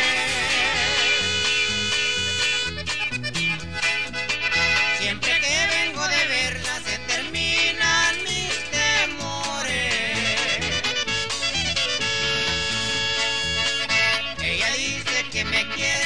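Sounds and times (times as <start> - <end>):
accordion melody: 0.0 - 16.0
bouncing bass: 0.0 - 16.0
strummed guitar rhythm: 0.0 - 16.0.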